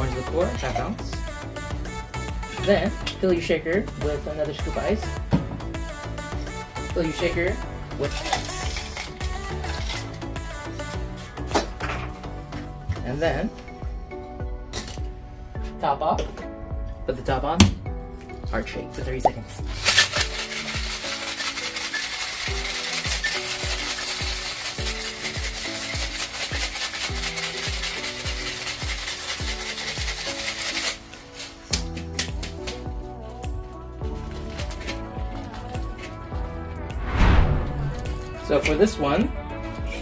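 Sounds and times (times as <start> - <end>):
background music with steady beat: 0.0 - 40.0
ice rattling in cocktail shaker: 6.9 - 10.9, 19.7 - 32.6
short loud thump: 37.0 - 38.2.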